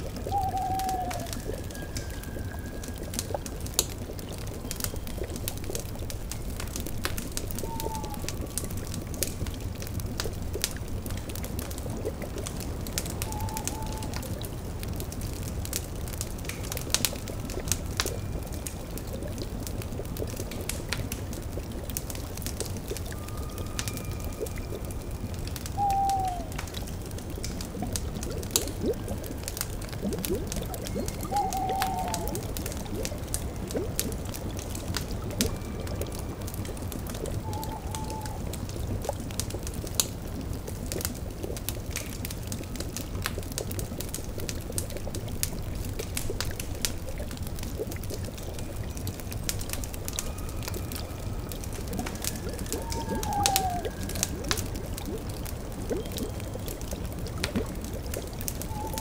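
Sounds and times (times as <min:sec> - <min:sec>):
fire crackling pops: 0:00.0 - 0:59.0
liquid bubbling: 0:00.0 - 0:59.0
owl hooting: 0:00.2 - 0:01.4, 0:07.6 - 0:08.3, 0:13.2 - 0:14.2, 0:25.7 - 0:26.6, 0:31.1 - 0:32.5, 0:37.4 - 0:38.5, 0:52.5 - 0:54.4, 0:58.7 - 0:59.0.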